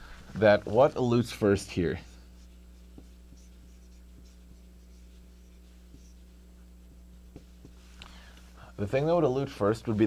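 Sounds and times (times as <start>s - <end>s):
steady low hum: 0.0s - 10.0s
marker scratching on whiteboard: 1.8s - 7.9s
marker taps: 2.9s - 4.4s, 7.3s - 7.8s.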